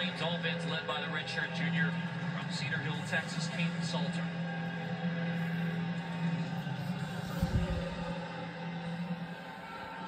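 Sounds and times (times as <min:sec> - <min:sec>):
faint music: 0:00.0 - 0:10.0
stadium crowd background: 0:00.0 - 0:10.0.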